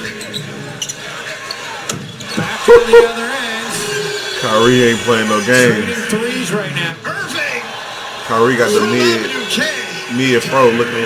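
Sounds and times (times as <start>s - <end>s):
arena sound: 2.4s - 4.9s, 8.3s - 10.2s.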